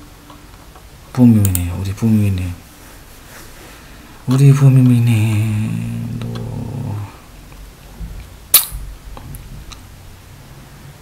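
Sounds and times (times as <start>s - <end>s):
man's low drawn-out vocal sound: 4.3s - 7.3s.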